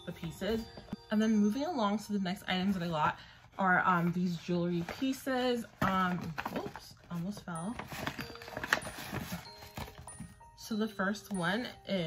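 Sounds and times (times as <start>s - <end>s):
faint background music: 0.0s - 12.0s
cardboard boxes clicking and knocking: 7.4s - 10.4s.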